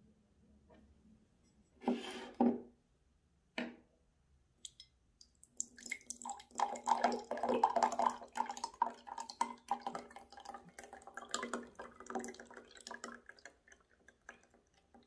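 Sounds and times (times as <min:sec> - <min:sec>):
drink pouring into a glass: 0:05.6 - 0:15.0.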